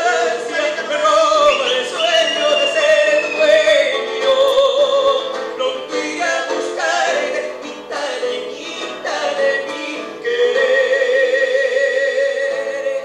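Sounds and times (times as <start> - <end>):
acoustic guitar: 0.0 - 13.0
man singing into a microphone: 0.0 - 13.0.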